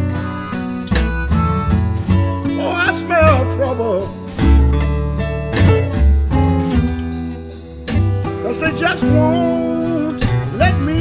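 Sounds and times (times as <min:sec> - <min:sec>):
bass line: 0:00.0 - 0:11.0
electric guitars: 0:00.0 - 0:11.0.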